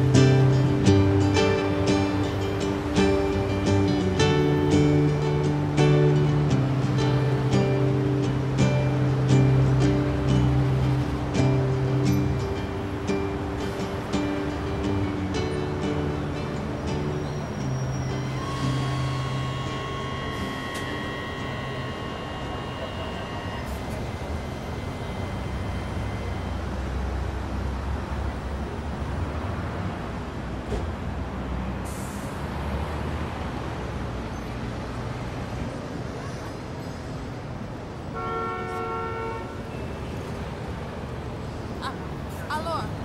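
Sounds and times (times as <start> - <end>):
music: 0.0 - 26.8
city street traffic: 0.0 - 43.0
metro train rumble: 0.0 - 43.0.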